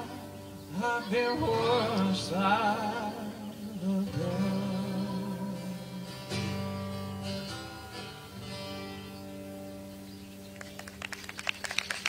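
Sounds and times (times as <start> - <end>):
high singing voice with vibrato: 0.0 - 6.4
guitars: 0.0 - 11.7.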